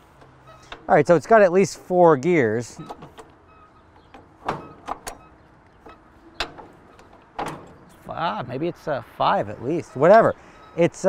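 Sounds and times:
gear lever metallic clunks: 0.2s - 1.0s, 2.6s - 8.0s.

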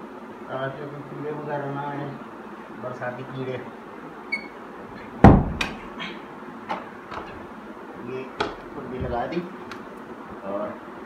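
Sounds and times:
knock on wooden door: 5.2s - 5.6s.

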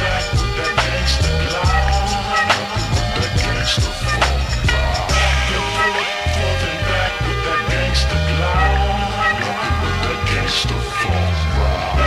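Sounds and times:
deep sliding bass line: 0.0s - 12.0s.

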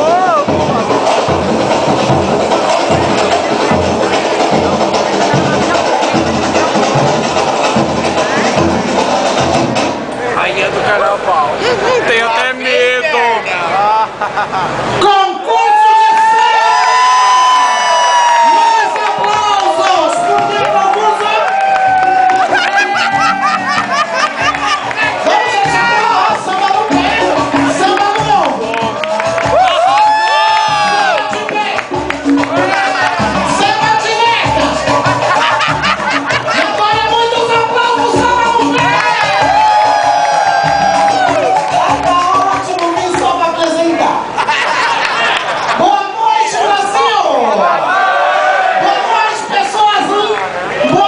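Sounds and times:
music with steady low beat: 0.0s - 10.1s, 21.7s - 43.2s
audience cheering and screaming: 15.4s - 28.0s, 28.7s - 42.5s, 44.4s - 49.4s.

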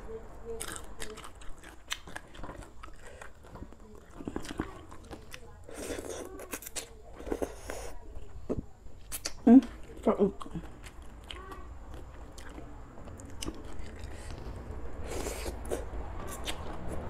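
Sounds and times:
person chewing food: 0.5s - 17.0s.

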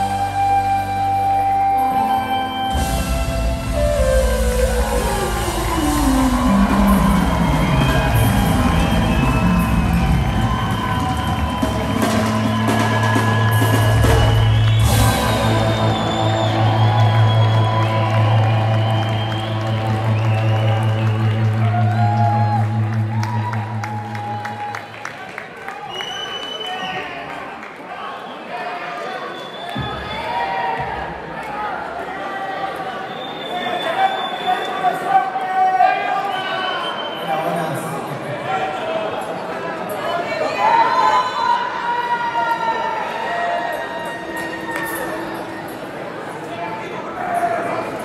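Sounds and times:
live rock band playing: 0.0s - 24.6s.

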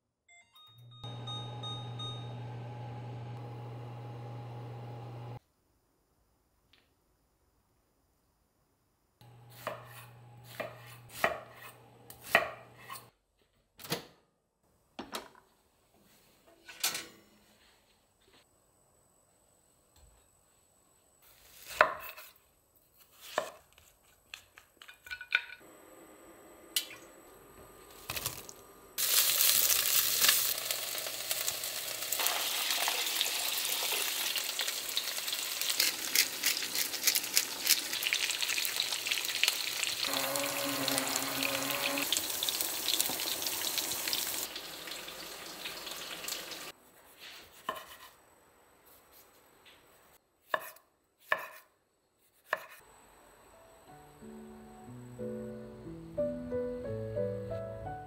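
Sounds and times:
food sizzling in a pot: 29.0s - 46.7s.

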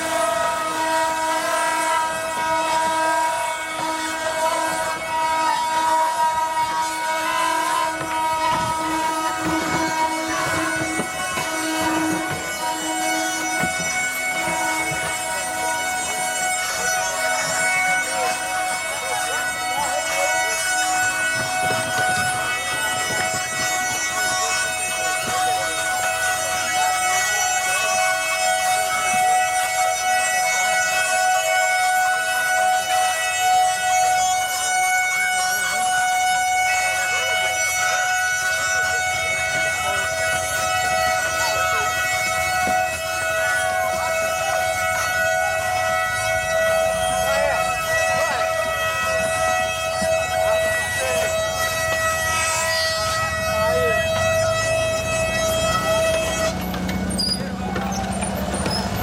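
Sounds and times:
wooden cart axle squealing: 0.0s - 59.0s.

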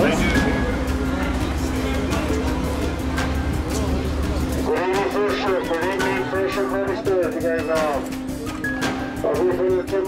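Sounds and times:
steady low hum: 0.0s - 4.8s.

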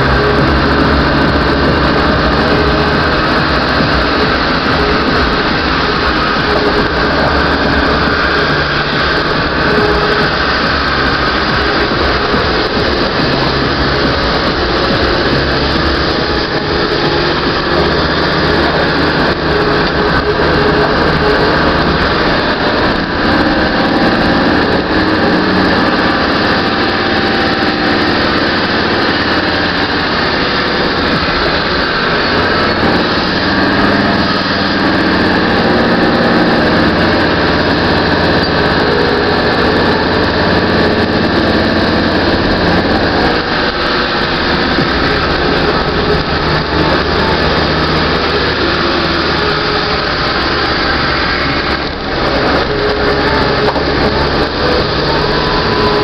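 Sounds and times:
engine pulling up a hill: 0.0s - 56.0s.

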